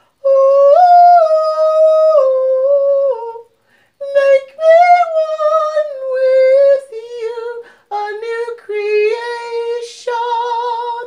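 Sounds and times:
breath: 0:00.0 - 0:00.2, 0:03.6 - 0:04.0, 0:07.6 - 0:07.9.

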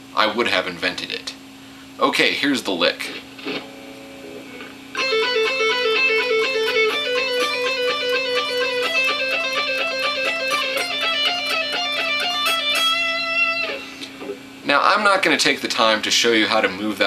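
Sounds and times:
electric guitar fast picked lick: 0:03.4 - 0:14.0.

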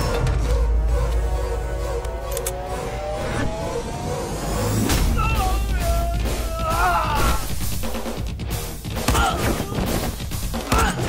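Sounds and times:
heavy low drone: 0:00.0 - 0:07.1
slowly rising tone: 0:00.5 - 0:04.9.

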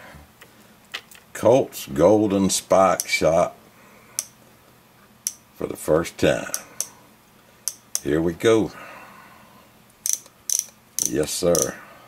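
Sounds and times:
revolver action metallic clicks: 0:10.0 - 0:11.7.

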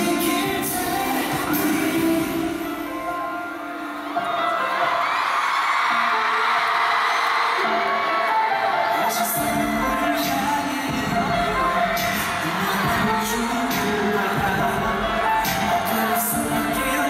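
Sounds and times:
person singing: 0:00.0 - 0:05.0, 0:07.6 - 0:17.0
pop ballad over sound system: 0:00.0 - 0:05.4, 0:07.2 - 0:17.0
audience screaming and cheering: 0:00.0 - 0:17.0.

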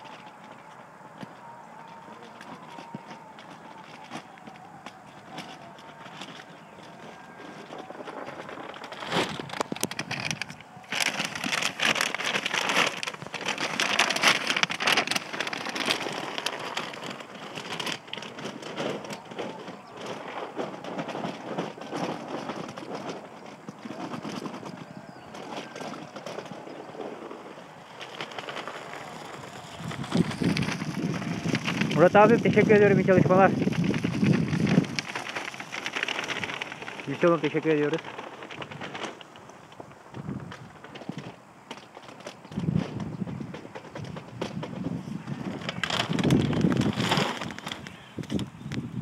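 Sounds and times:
dry kibble pouring into a box: 0:07.8 - 0:19.6, 0:28.0 - 0:39.2.

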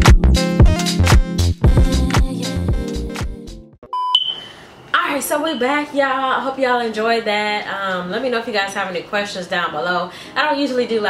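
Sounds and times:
background music: 0:00.0 - 0:03.8
short electronic beep: 0:03.9 - 0:04.5
higher ringing tone: 0:04.0 - 0:04.5.

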